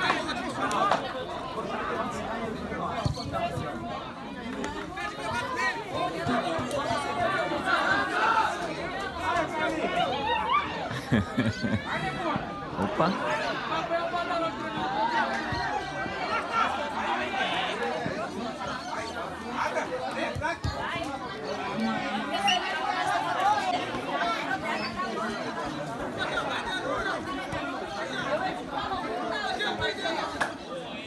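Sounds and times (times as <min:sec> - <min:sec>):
overlapping voices calling and chattering: 0:00.0 - 0:31.0.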